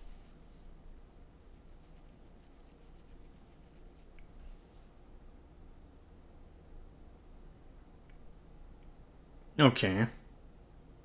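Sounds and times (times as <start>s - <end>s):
fingers scratching beard: 0.6s - 4.2s.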